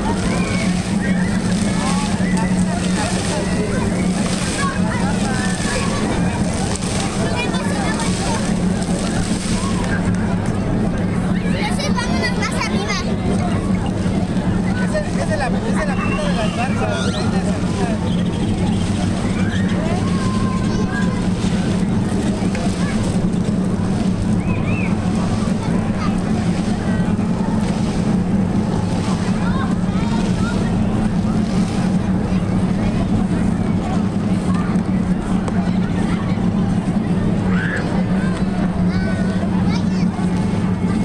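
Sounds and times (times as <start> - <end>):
constant low hum: 0.0 - 41.0
crowd chatter: 0.0 - 41.0
distant traffic: 0.0 - 41.0
distant voices: 0.0 - 41.0
steady low drone: 0.0 - 41.0.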